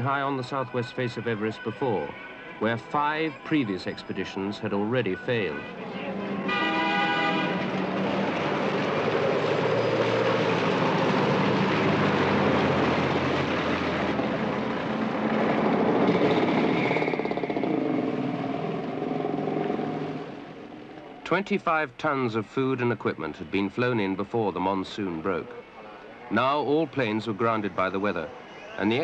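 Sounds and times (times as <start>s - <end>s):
vehicle horn: 5.4s - 7.7s
motor vehicle passing: 5.8s - 21.1s.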